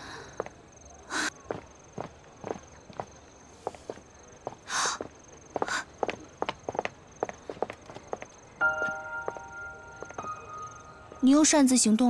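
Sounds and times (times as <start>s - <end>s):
footsteps on stone paving: 0.2s - 10.7s.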